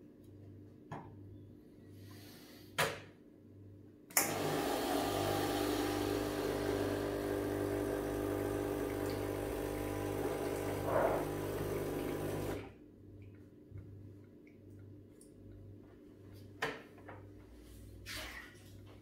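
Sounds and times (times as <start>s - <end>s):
espresso machine pump buzzing: 4.2s - 12.7s.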